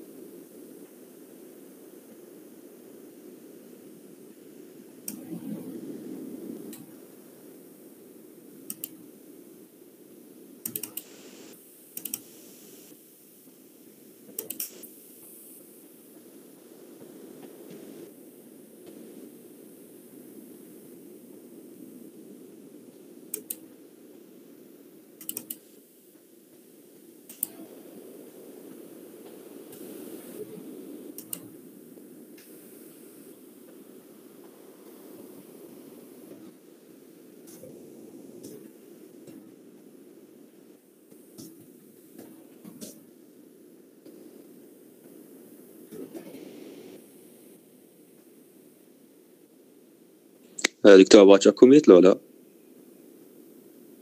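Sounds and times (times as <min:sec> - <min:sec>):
steady background hum: 0:00.0 - 0:54.0
computer clicks: 0:08.7 - 0:09.0, 0:10.6 - 0:11.1, 0:12.0 - 0:12.3, 0:14.4 - 0:14.8, 0:23.3 - 0:23.6, 0:25.2 - 0:25.6, 0:31.2 - 0:31.5.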